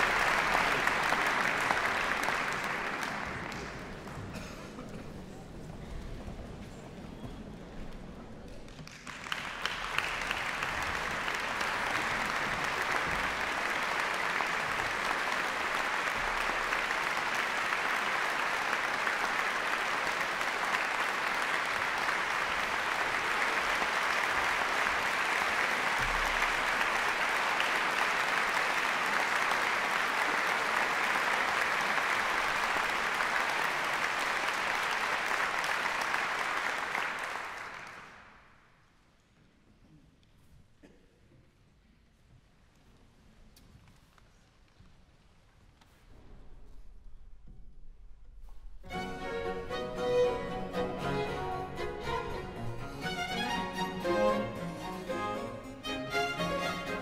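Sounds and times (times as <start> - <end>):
audience applauding: 0.0 - 5.4, 8.4 - 38.6.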